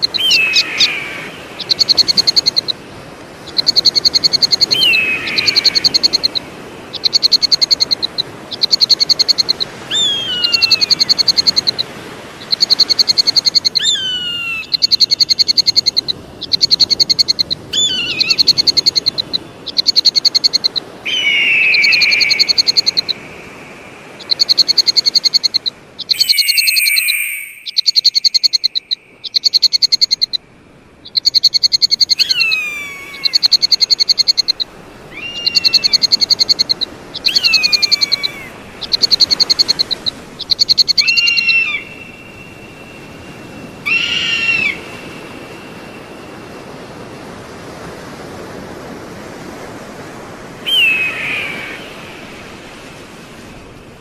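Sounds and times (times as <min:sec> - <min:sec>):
eagle whistled calls: 0:00.0 - 0:02.8, 0:03.5 - 0:30.4, 0:31.1 - 0:46.5, 0:50.6 - 0:52.1.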